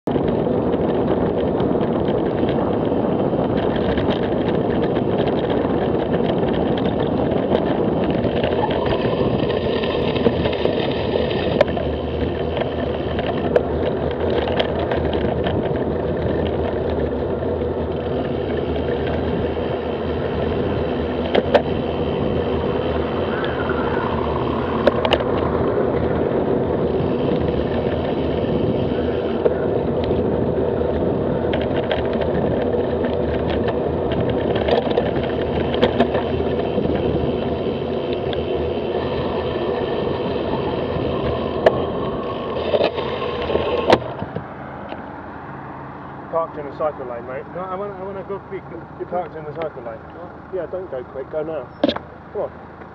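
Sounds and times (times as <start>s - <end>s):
wind on microphone: 0.0s - 49.4s
tyre and road noise: 0.0s - 52.9s.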